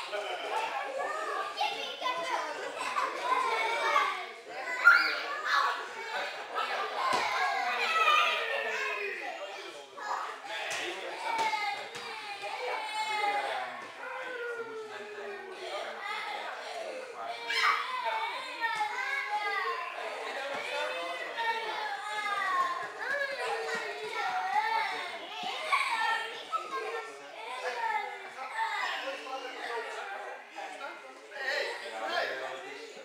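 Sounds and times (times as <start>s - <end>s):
children chattering: 0.0s - 33.0s.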